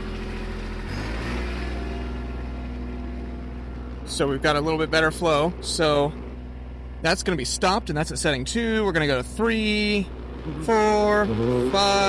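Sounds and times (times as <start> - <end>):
tractor engine revving: 0.0 - 12.0.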